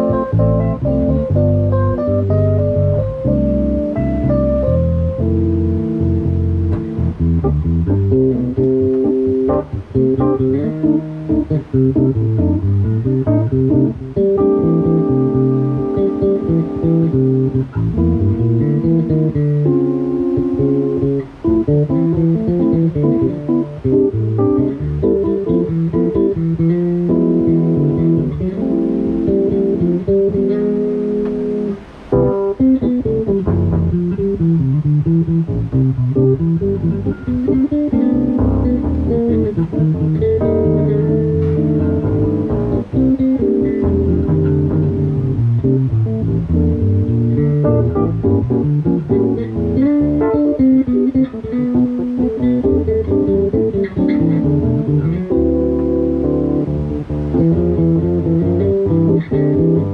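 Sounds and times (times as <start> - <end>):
electric bass guitar: 0.0 - 59.9
stage piano: 0.0 - 59.9.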